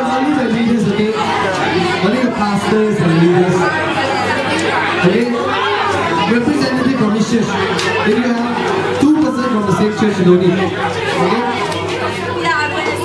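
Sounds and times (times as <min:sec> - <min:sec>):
crowd chatter in a hall: 0:00.0 - 0:13.0.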